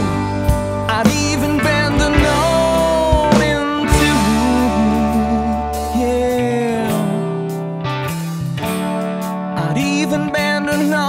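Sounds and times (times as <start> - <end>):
electric guitar bending notes: 0.0 - 11.0
sustained bass line: 0.0 - 11.0.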